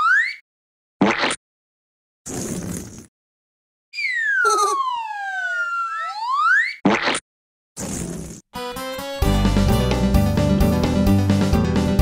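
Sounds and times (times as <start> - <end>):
cartoon whistle sliding down: 4.0 - 6.8.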